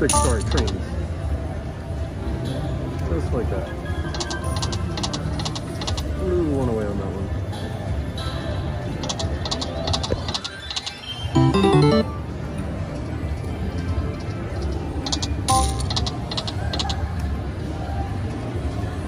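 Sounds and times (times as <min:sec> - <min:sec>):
slot machine game music: 0:00.1 - 0:00.6, 0:11.4 - 0:12.4, 0:15.5 - 0:16.0
casino din: 0:11.4 - 0:12.2
chime ringing: 0:11.4 - 0:12.2
jingle of stepped notes: 0:11.4 - 0:12.2
slot machine reel sound effects: 0:11.4 - 0:12.3.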